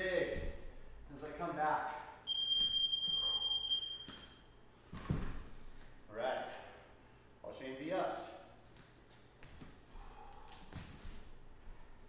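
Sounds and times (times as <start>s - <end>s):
interval timer beep: 2.3s - 4.3s
dumbbells thumping on floor: 4.9s - 5.5s.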